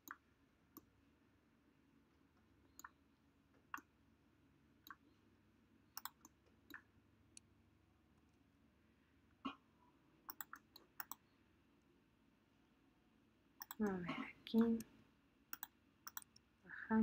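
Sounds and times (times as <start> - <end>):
computer mouse clicks: 0.0 - 0.9, 2.7 - 3.0, 4.8 - 5.0, 6.0 - 7.5, 10.3 - 11.3, 13.6 - 13.9, 15.5 - 16.5.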